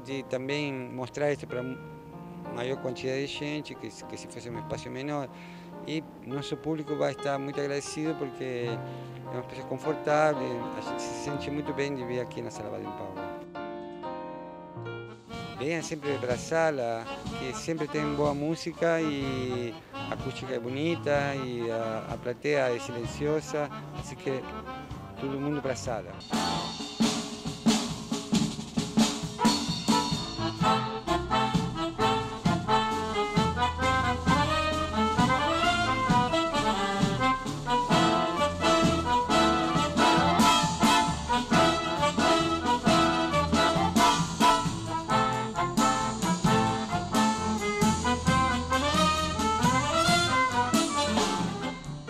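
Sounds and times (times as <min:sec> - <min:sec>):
tango jazz ensemble playing: 0:00.0 - 0:52.0
sharp drum hits: 0:26.2 - 0:31.9.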